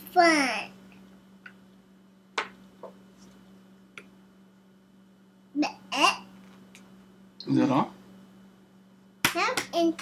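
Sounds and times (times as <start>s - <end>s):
young child's voice: 0.0s - 0.8s, 5.6s - 6.3s, 9.3s - 10.0s
steady low hum: 0.0s - 10.0s.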